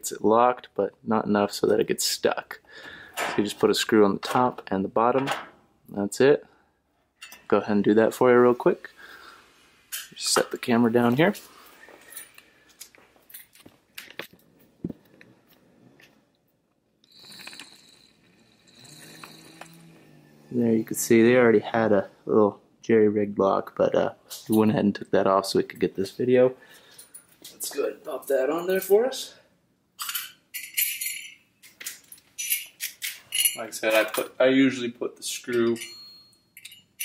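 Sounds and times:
metal hardware jingling: 30.0s - 34.2s, 35.4s - 37.0s.

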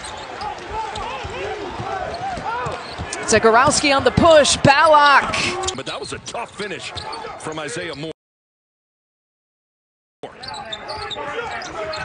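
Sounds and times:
shoes squeaking on hardwood court: 2.0s - 3.3s, 10.3s - 12.0s.

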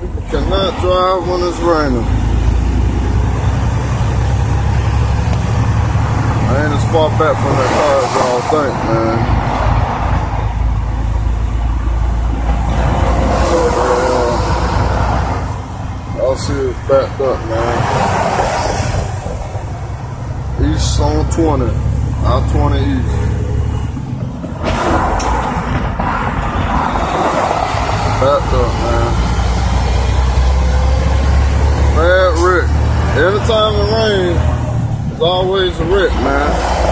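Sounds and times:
diesel truck engine drone: 0.0s - 36.9s
tyres hissing on wet road: 7.1s - 8.9s, 13.0s - 15.4s, 36.0s - 36.9s.

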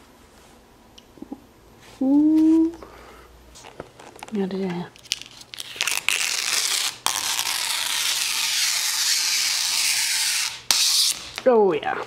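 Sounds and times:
plastic film being peeled off: 3.6s - 11.6s.

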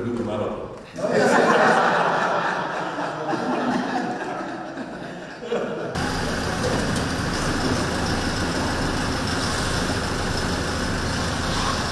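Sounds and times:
car engine idling: 6.0s - 11.9s
outdoor noise: 6.0s - 11.9s.

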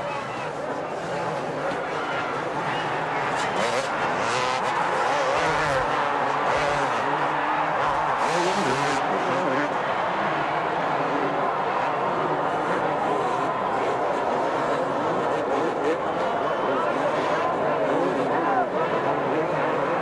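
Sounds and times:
motocross bike engines revving: 0.0s - 20.0s.

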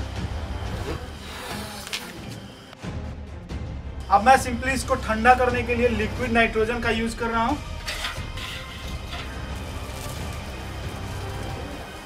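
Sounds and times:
breath blown into balloon: 0.7s - 2.3s.

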